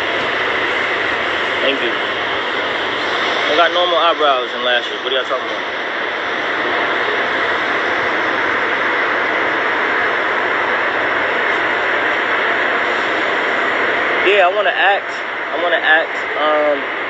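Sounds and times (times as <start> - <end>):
loud steady rushing noise: 0.0 - 17.0.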